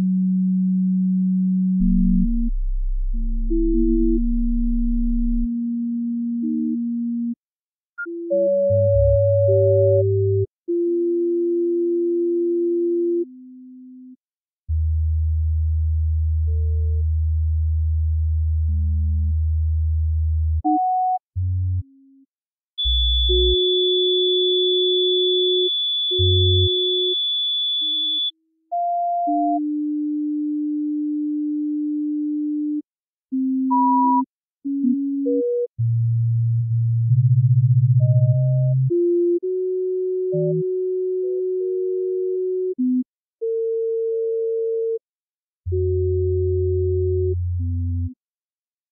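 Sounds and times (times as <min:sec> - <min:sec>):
deep low tone: 0:01.2 - 0:05.7
sine wave tones: 0:22.8 - 0:32.9.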